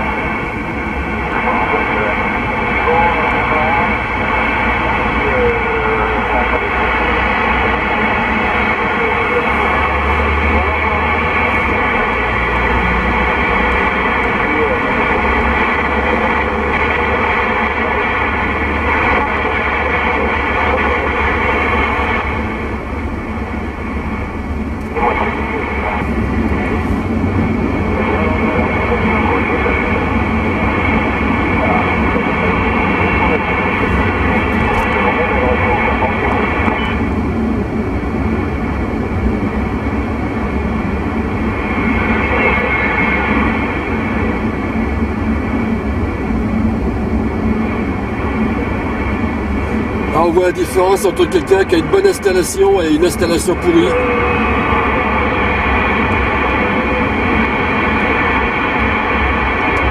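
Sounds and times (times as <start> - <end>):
faint radio voices: 0.0 - 22.8, 24.8 - 37.1, 41.6 - 44.7, 47.7 - 59.9
radio static: 0.0 - 37.1, 41.6 - 44.6, 47.7 - 59.9
car road rumble: 0.0 - 59.9.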